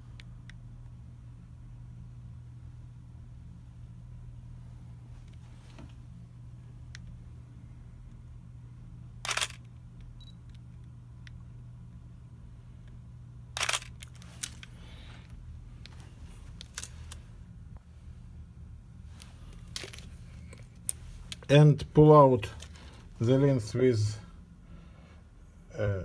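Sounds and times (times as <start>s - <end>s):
camera shutter clack: 9.2s - 9.7s, 13.6s - 14.6s.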